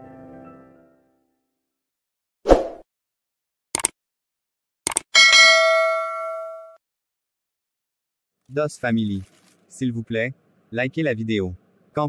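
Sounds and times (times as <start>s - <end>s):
notification bell ding: 5.2s - 6.8s.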